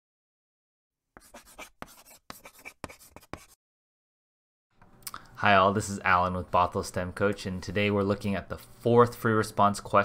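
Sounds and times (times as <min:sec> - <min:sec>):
chalk scratching on blackboard: 0:01.2 - 0:03.6.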